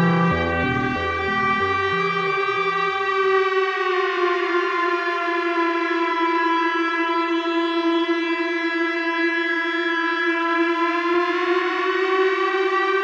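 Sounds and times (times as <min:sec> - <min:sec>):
electronic drone note: 0:00.0 - 0:03.7.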